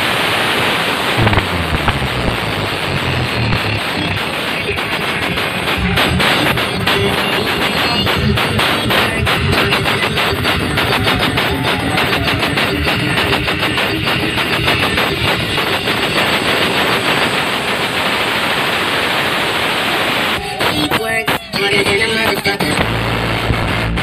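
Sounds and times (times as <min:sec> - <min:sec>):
loud music over loudspeakers: 0:00.0 - 0:24.0
rapid drum hits: 0:01.2 - 0:03.9, 0:04.8 - 0:18.2.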